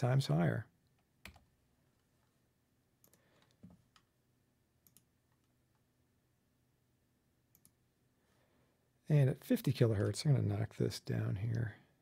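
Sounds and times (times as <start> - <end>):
computer mouse clicks: 3.0 - 4.1, 4.8 - 5.6, 7.5 - 7.8.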